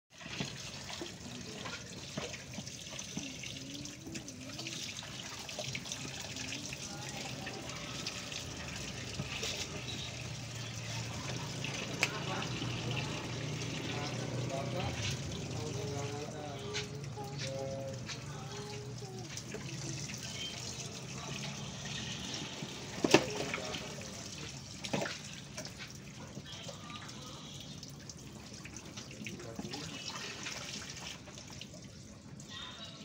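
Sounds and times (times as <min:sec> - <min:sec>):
faint voices: 0:00.4 - 0:33.0.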